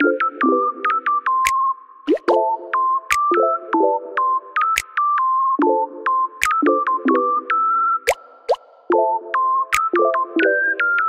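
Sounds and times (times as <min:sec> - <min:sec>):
upbeat electronic music: 0:00.0 - 0:01.2, 0:02.1 - 0:11.0.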